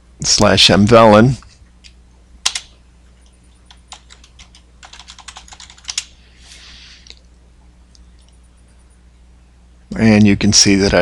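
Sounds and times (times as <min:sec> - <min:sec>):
keyboard keystrokes: 0:02.4 - 0:02.7, 0:03.9 - 0:06.1
soft hiss: 0:06.0 - 0:10.0.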